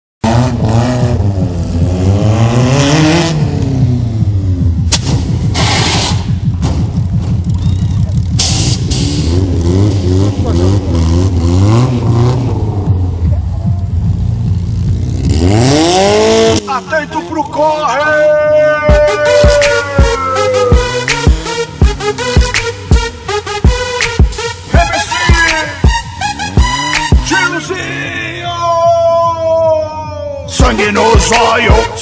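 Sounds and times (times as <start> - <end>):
car engine revving: 0.2 - 17.6, 18.9 - 28.6
sharp bangs: 4.8 - 7.6.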